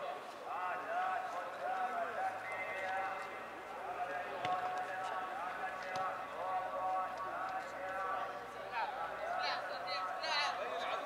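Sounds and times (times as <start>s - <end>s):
voices calling and shouting: 0.0s - 11.0s.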